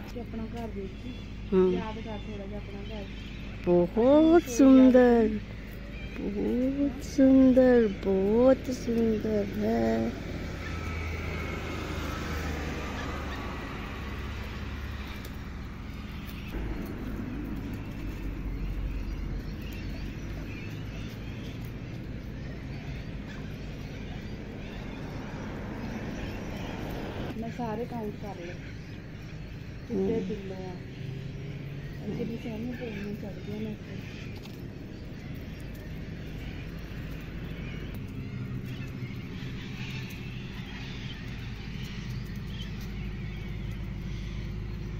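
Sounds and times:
low outdoor rumble: 0.0s - 44.9s.

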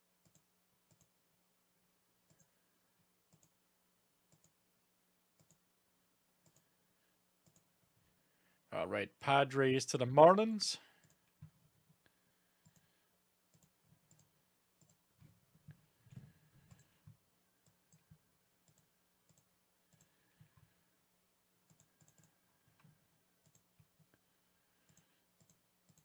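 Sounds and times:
computer mouse and keyboard clicks: 0.2s - 1.2s, 3.3s - 3.6s, 4.3s - 4.6s, 5.4s - 5.6s, 6.4s - 6.7s, 7.4s - 7.7s, 12.6s - 12.9s, 13.5s - 20.7s, 21.7s - 24.1s, 24.8s - 26.0s.

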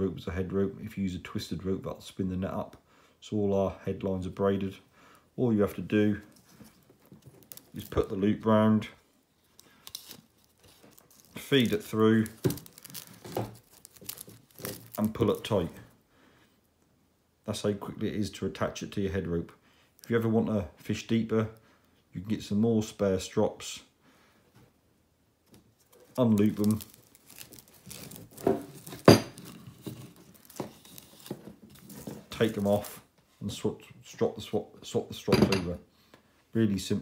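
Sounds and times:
rope rubbing crackling rustles: 9.4s - 15.8s, 25.8s - 33.0s.

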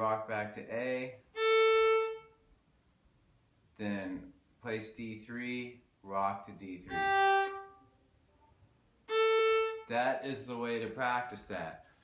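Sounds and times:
fiddle bowing a single note: 6.9s - 7.8s, 9.1s - 9.9s.

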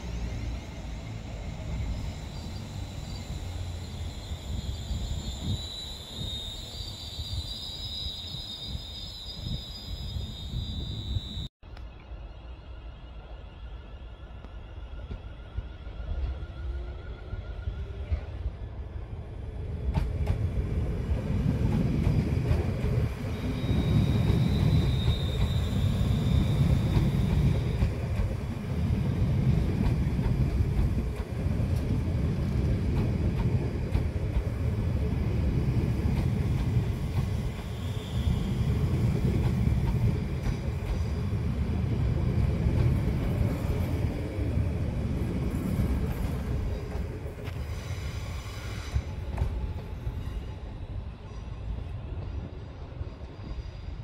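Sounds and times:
high-pitched squeal: 0.0s - 11.5s
train wheels rumbling on rails: 14.9s - 54.0s.

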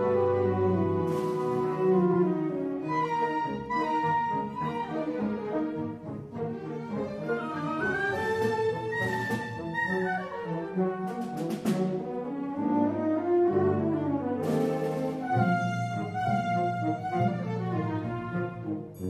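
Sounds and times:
saxophone and strings orchestra: 0.0s - 19.0s.

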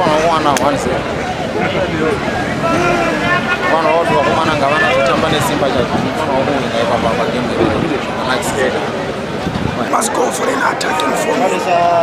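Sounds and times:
background chatter: 0.0s - 12.0s
street traffic: 0.0s - 12.0s
man speaking: 9.8s - 11.6s.

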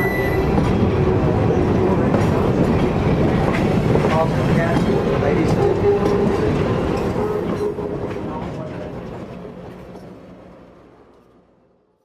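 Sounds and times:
diesel locomotive engine running: 0.0s - 11.6s
train wheels clicking on rails: 0.2s - 10.2s.

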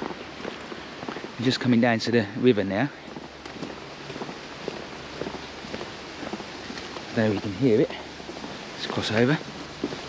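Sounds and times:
footsteps on tarmac: 0.0s - 10.0s
river rushing: 0.0s - 10.0s.

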